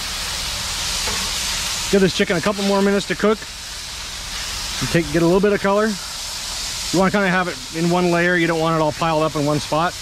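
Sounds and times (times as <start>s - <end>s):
chicken sizzling on griddle: 0.0s - 10.0s.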